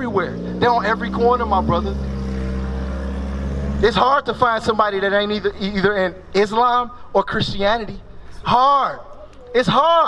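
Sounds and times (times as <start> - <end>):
car driving past: 0.2 - 5.6.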